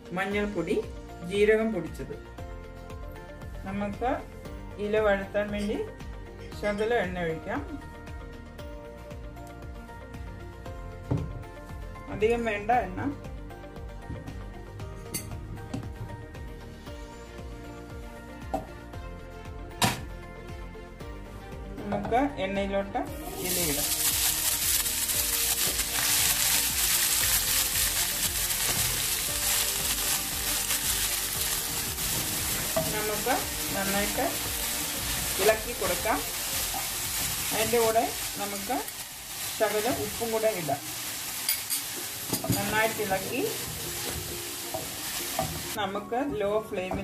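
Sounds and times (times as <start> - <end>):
leaves sizzling in hot oil: 23.2 - 45.8.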